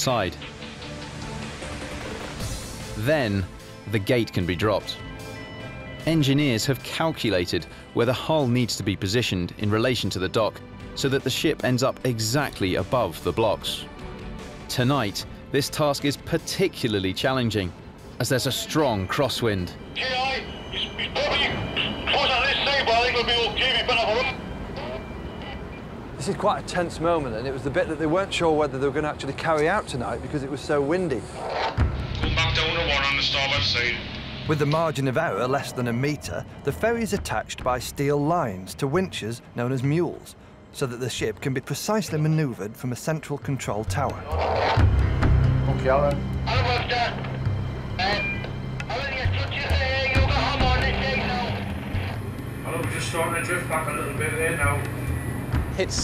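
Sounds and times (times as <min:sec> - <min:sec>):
background music with drone: 0:00.0 - 0:56.0
indistinct voices talking: 0:16.2 - 0:31.5, 0:32.1 - 0:40.2, 0:43.3 - 0:56.0
steady background noise: 0:17.6 - 0:56.0
indistinct voices: 0:19.9 - 0:25.8.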